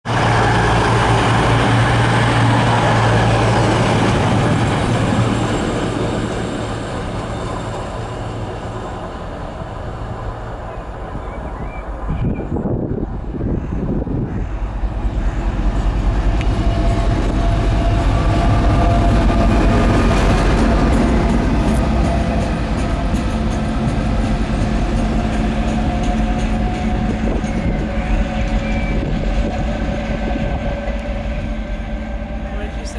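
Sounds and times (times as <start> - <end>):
diesel locomotive passing: 0.0 - 32.9
diesel multiple unit engines: 0.1 - 32.9.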